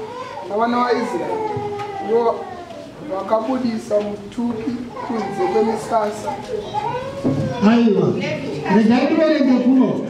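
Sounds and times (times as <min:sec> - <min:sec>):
man speaking into a microphone: 0:00.4 - 0:06.4, 0:07.5 - 0:10.0
children's voices: 0:04.6 - 0:08.8.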